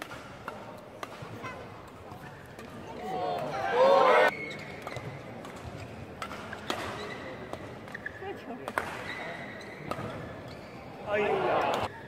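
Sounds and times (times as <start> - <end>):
racket striking shuttlecock: 0.0 - 2.8, 8.6 - 9.1, 9.8 - 10.2
crowd shouting and cheering: 3.0 - 4.3, 11.1 - 11.9
shoes squeaking on court: 4.3 - 5.9, 6.5 - 8.3, 9.0 - 11.0.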